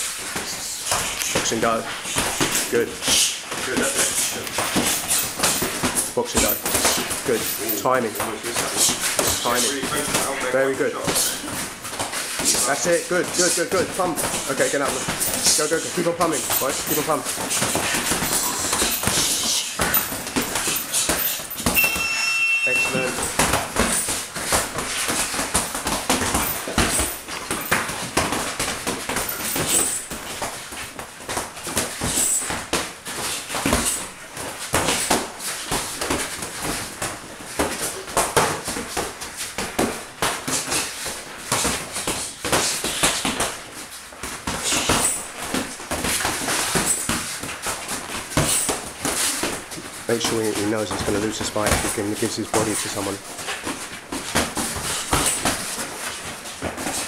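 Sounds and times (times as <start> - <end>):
boxing gloves thudding: 0.4 - 22.0, 23.1 - 57.0
high squeak: 21.7 - 23.4.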